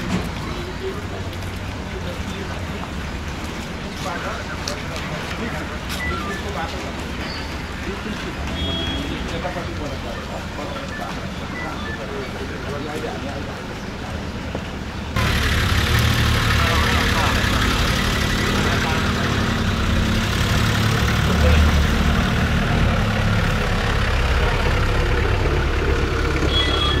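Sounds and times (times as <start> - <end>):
people's voices: 0.0 - 27.0
car engine rolling past: 15.2 - 26.5.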